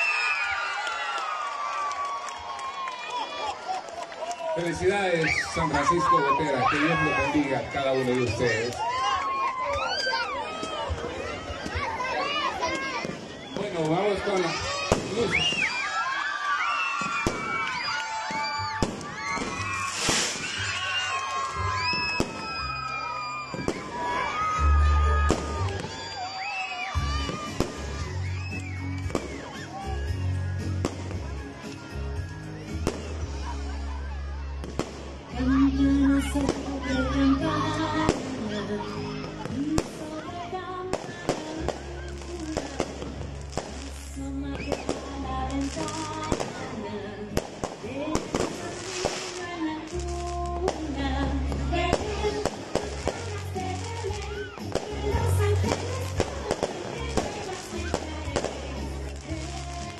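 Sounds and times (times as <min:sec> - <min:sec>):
people's voices: 0:03.0 - 0:15.8, 0:23.4 - 0:59.9
fireworks bangs and crackles: 0:04.6 - 0:16.2, 0:16.8 - 0:33.5, 0:34.6 - 0:35.4, 0:36.2 - 0:37.0, 0:38.0 - 0:38.4, 0:39.3 - 0:40.2, 0:40.9 - 0:59.9.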